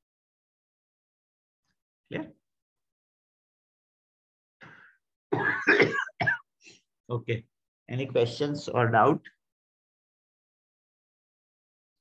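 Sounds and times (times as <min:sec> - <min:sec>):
person clearing throat and coughing: 0:05.3 - 0:06.5.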